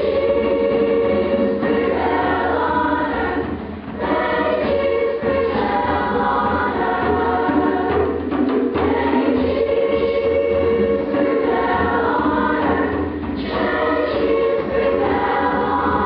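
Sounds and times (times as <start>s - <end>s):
children's choir singing: 0.0s - 16.0s.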